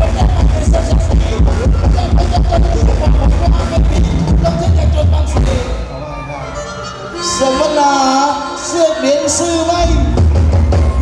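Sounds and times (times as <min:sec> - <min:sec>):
steady drum beat: 0:00.0 - 0:05.8, 0:09.2 - 0:11.0
amplified live band dance music: 0:00.0 - 0:11.0
heavy bass line: 0:00.0 - 0:11.0.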